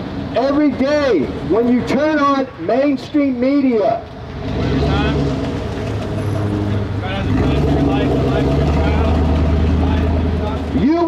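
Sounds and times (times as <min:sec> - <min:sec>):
large vehicle engine droning: 0:00.0 - 0:11.0.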